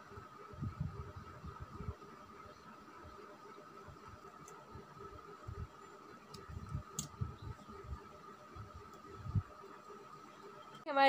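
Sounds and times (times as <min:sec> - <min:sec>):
faint high-pitched hum: 0:00.0 - 0:11.0.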